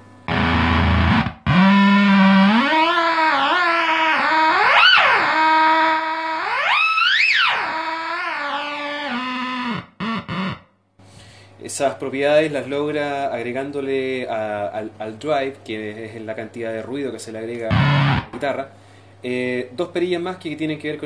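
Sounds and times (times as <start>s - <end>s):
fuzzed electric guitar squealing: 0.3s - 10.7s, 17.7s - 18.4s.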